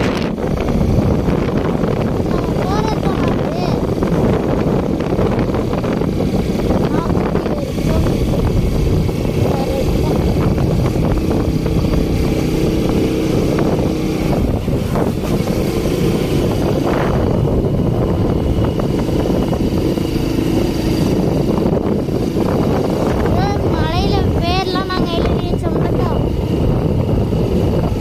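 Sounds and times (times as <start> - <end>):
small motorbike engine running: 0.0 - 28.0
wind rumbling on microphone: 0.0 - 28.0.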